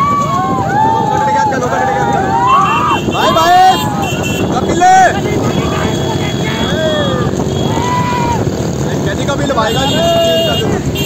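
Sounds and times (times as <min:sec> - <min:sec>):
motorcycle engine: 0:00.0 - 0:11.0
road and wind rumble: 0:00.0 - 0:11.0
men shouting long calls: 0:00.8 - 0:08.4, 0:09.7 - 0:10.6.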